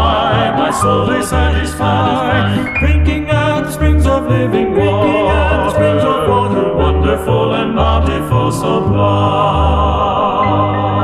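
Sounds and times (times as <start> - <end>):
low accompaniment notes: 0.0 - 11.0
vocal quartet singing hymn: 0.0 - 11.0.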